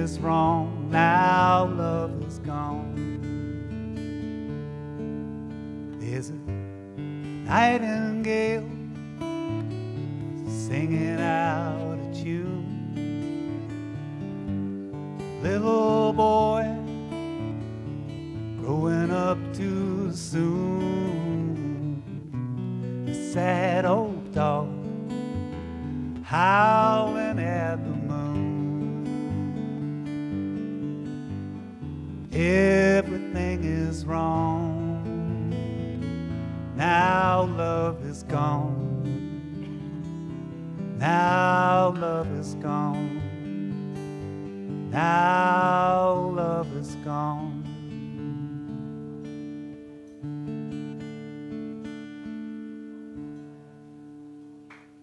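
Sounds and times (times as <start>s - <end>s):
man singing: 0.0s - 3.7s, 5.9s - 6.7s, 7.3s - 13.8s, 15.2s - 22.4s, 23.0s - 25.5s, 26.2s - 30.1s, 32.3s - 36.1s, 36.7s - 48.7s
strummed acoustic guitar: 0.0s - 55.0s.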